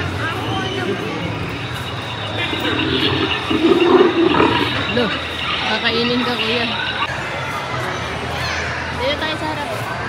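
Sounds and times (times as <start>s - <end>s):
people's voices: 0.0s - 10.0s
dinosaur roar over loudspeakers: 2.4s - 5.2s.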